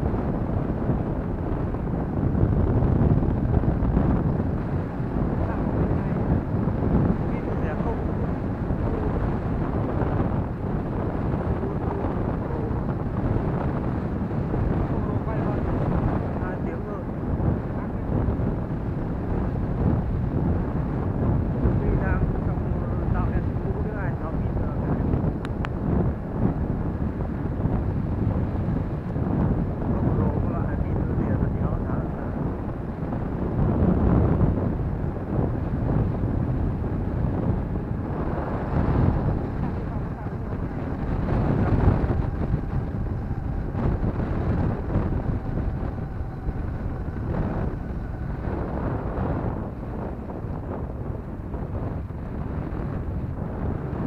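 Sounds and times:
wind rushing over microphone: 0.0 - 54.0
motorbike engine running: 37.1 - 52.3.

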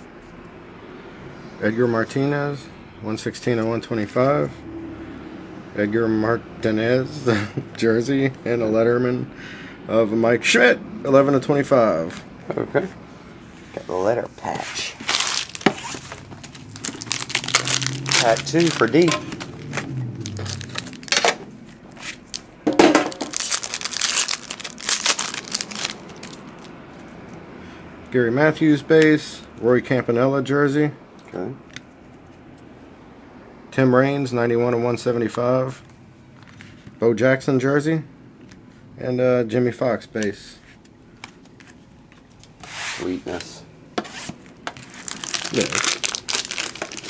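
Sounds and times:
cards rubbing in plastic sleeves: 13.6 - 22.5, 23.2 - 27.1, 44.0 - 47.0
foil wrapping crinkling and tearing: 14.9 - 26.7, 44.7 - 47.0.

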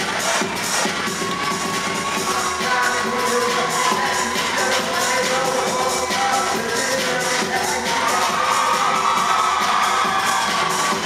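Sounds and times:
crowd cheering: 0.0 - 11.0
loud dance music: 0.0 - 11.0.

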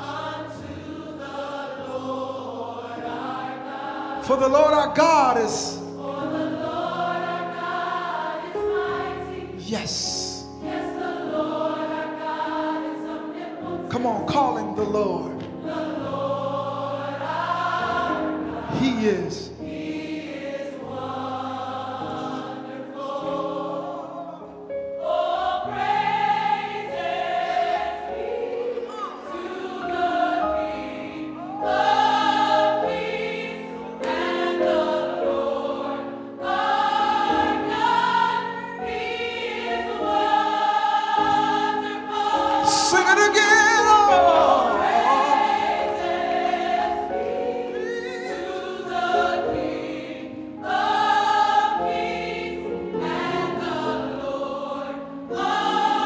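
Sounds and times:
gospel choir singing: 0.0 - 56.0.

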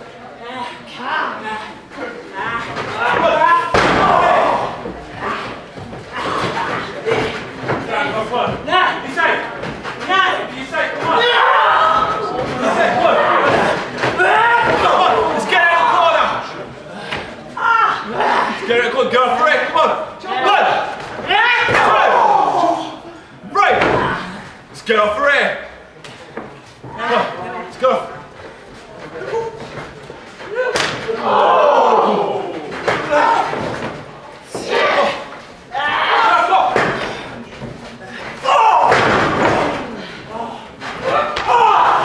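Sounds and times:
loud shouting voices: 0.5 - 9.4, 10.0 - 24.4, 30.4 - 37.4, 38.1 - 42.0.

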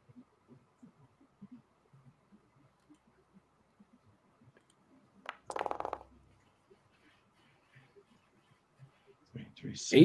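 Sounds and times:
dice rolling clatter: 5.3 - 6.1.

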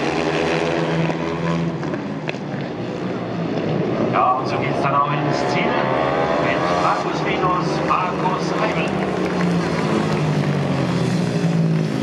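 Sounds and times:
racing engines droning: 0.0 - 12.0.

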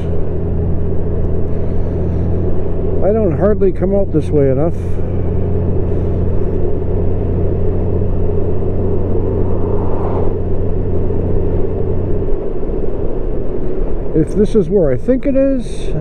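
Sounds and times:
motorcycle engine humming: 0.0 - 14.2
wind and road noise: 0.0 - 16.0.

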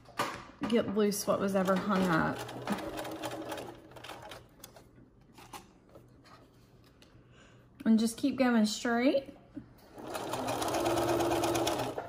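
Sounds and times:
sewing machine stitching: 1.6 - 4.4, 9.9 - 12.0.

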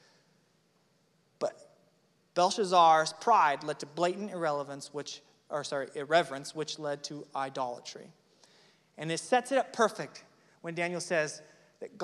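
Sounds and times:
man speaking into a microphone: 1.4 - 12.0.

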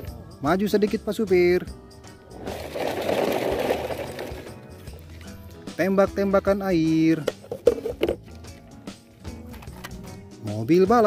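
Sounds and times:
background music: 0.0 - 11.0
plastic toys rattling together: 2.4 - 4.6.

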